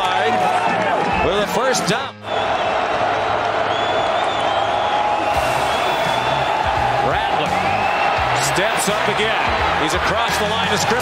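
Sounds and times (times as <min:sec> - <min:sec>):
stadium crowd noise: 0:00.0 - 0:11.0
music over sound system: 0:05.2 - 0:11.0.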